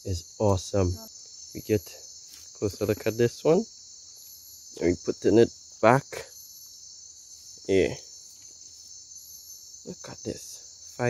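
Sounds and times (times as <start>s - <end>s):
high insect shrill: 0.0s - 11.0s
night insects chirping: 0.0s - 11.0s.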